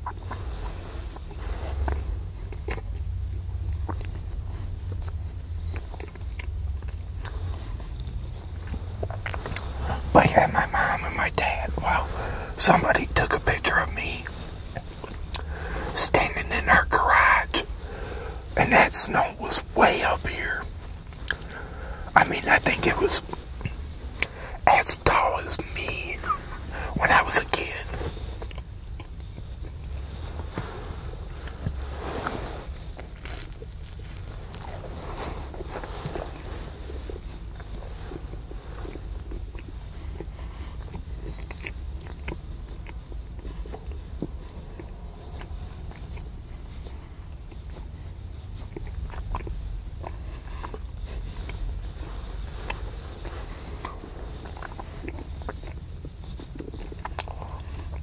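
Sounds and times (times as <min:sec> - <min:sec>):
biting and chewing food: 0:00.0 - 0:15.9, 0:22.7 - 0:58.0
steady low hum: 0:00.0 - 0:58.0
wet mouth clicks: 0:48.5 - 0:51.7, 0:52.6 - 0:58.0.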